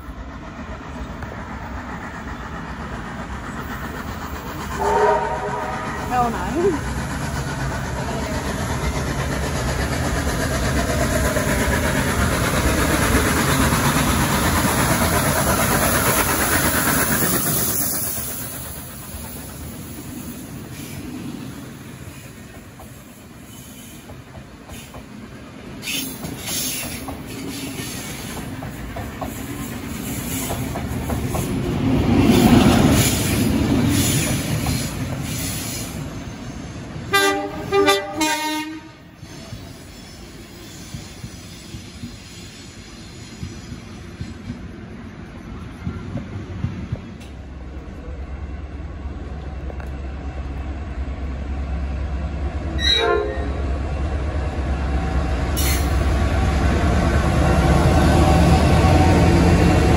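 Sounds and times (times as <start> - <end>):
train running past: 0.0 - 59.9
train horn short blasts: 4.8 - 6.0, 37.1 - 39.1, 52.8 - 53.6.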